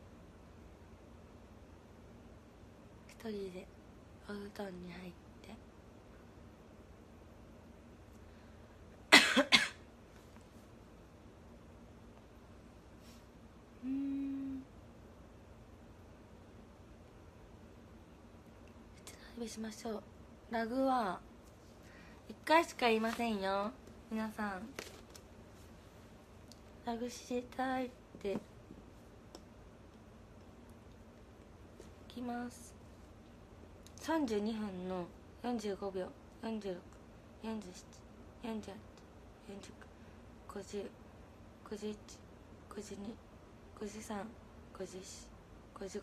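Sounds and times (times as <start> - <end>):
woman coughing: 9.1 - 9.8.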